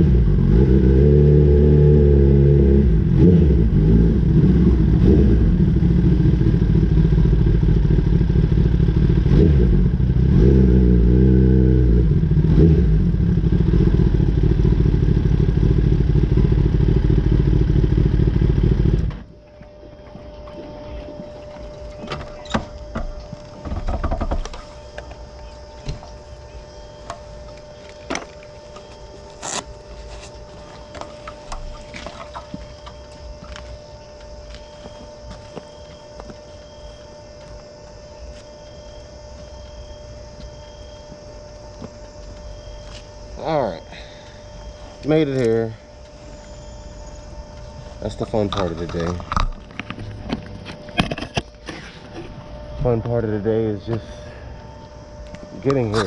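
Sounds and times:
motorcycle engine running: 0.0 - 21.1, 22.0 - 56.0
faint steady tone: 13.0 - 56.0
scattered clicks and knocks: 22.5 - 25.1.

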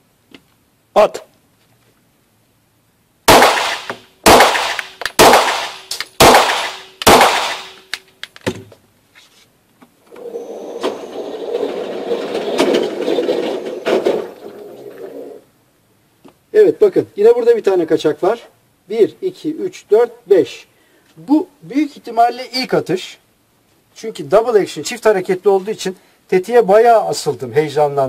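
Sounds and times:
pistol shots echoing indoors: 3.3 - 7.9
target carrier motor running: 10.1 - 14.3.

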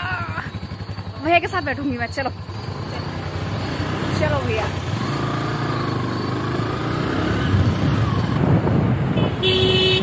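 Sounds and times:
motorbike engine running: 0.0 - 10.0.

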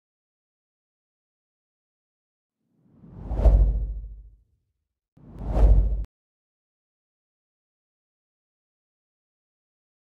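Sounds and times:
whoosh with low rumble: 3.1 - 4.3, 5.3 - 6.1.

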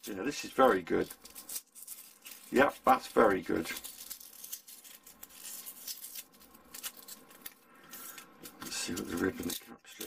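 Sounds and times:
foam crackling and tearing: 0.0 - 10.0.

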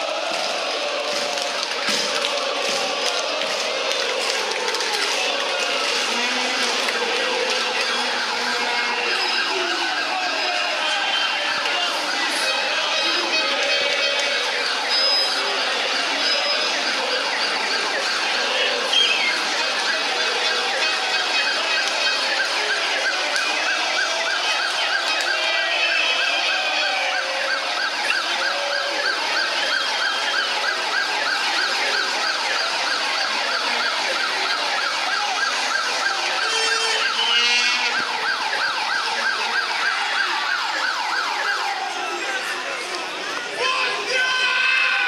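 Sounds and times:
large street crowd: 0.0 - 45.0
siren warbling: 5.9 - 42.0.

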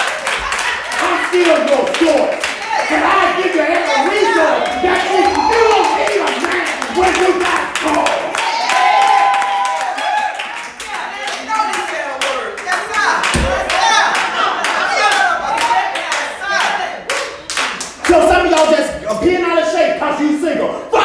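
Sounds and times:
raised voices calling out: 2.6 - 8.4
low thump: 13.3 - 13.7.

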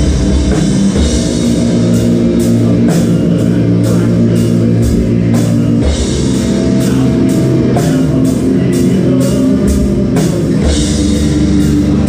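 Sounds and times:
distorted guitars and bass: 0.0 - 12.0
slow drum beat: 0.0 - 12.0.

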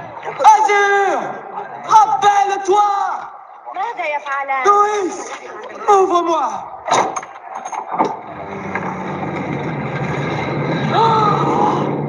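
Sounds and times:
low steady drone: 8.2 - 12.0.

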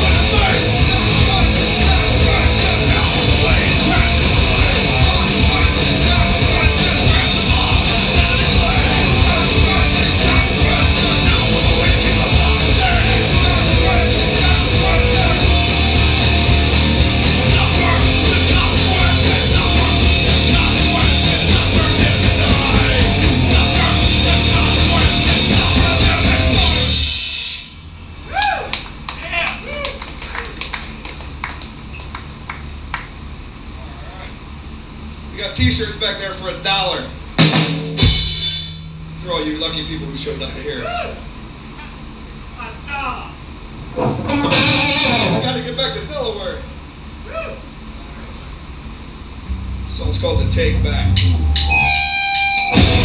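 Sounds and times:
punk rock band playing loudly: 0.0 - 27.3, 37.4 - 39.2, 51.1 - 53.0
amplifier hum: 0.0 - 53.0.

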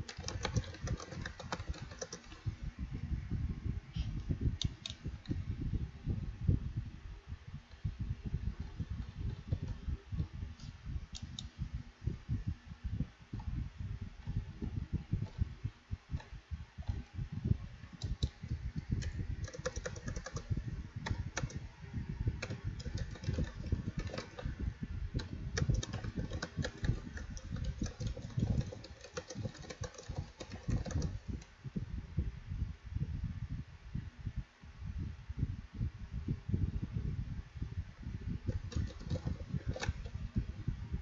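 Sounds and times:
keyboard typing clicks: 0.0 - 2.4, 18.0 - 18.4, 19.0 - 21.6, 22.4 - 24.5, 25.2 - 31.3, 38.5 - 40.2.

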